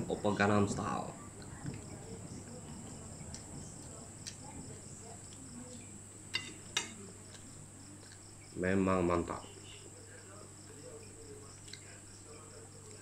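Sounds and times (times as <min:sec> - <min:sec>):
crickets chirping: 0:00.0 - 0:13.0
metal spoon clinking on plate: 0:06.3 - 0:07.0.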